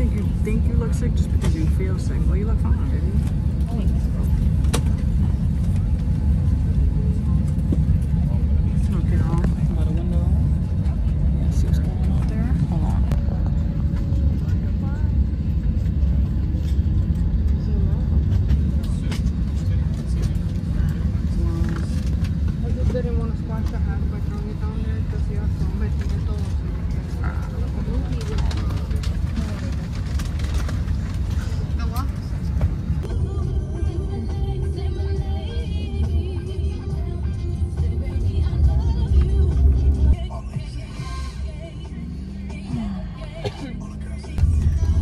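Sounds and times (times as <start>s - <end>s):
airliner cabin rumble: 0.0s - 45.0s
faint passenger voices: 0.0s - 45.0s.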